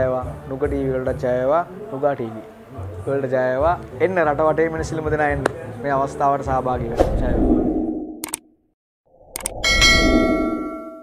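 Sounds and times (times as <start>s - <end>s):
low whoosh: 6.8s - 8.2s, 9.1s - 10.9s
mouse double click: 8.2s - 8.4s, 9.3s - 9.6s
bright bell ding: 9.6s - 11.0s.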